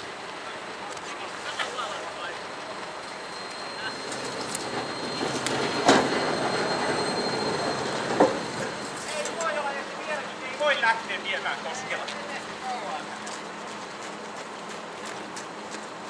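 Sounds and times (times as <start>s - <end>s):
high whine: 0.0s - 13.5s
tram rolling past: 0.0s - 16.0s
wheels clacking on rails: 1.6s - 10.7s.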